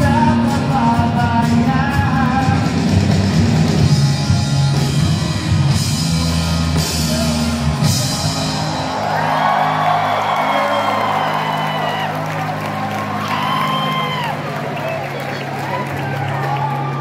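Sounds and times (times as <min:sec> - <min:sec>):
crowd cheering and whooping: 0:07.8 - 0:17.0.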